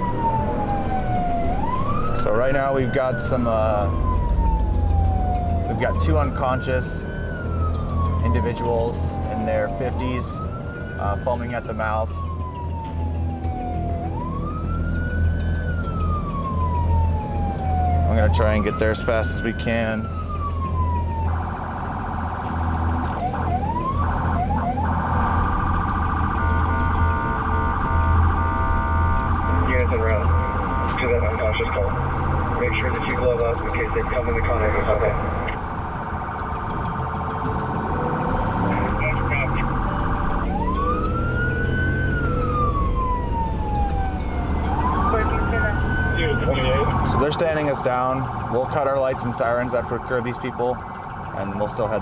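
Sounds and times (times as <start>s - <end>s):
engine and road hum: 0.0s - 52.0s
police siren yelp and wail: 0.0s - 52.0s.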